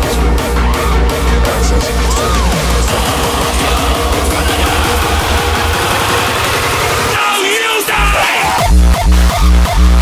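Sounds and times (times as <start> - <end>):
hardstyle dance music: 0.0 - 10.0
noisy high synth lead: 1.7 - 7.5
distorted kick drum roll: 2.1 - 7.3.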